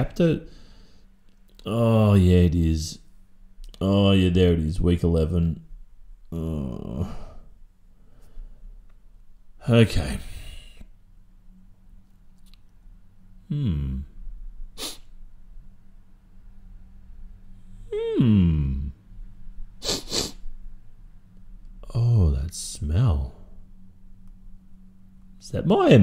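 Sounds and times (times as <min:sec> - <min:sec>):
man sighing: 0:06.3 - 0:07.5, 0:13.5 - 0:14.2, 0:17.8 - 0:19.0
man sniffing: 0:14.8 - 0:15.2, 0:19.8 - 0:20.5.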